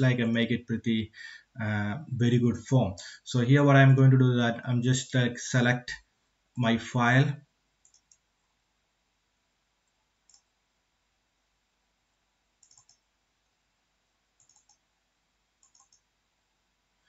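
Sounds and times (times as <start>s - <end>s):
computer mouse clicks: 7.8s - 8.3s, 9.9s - 10.5s, 12.6s - 13.1s, 14.4s - 14.8s, 15.6s - 16.1s.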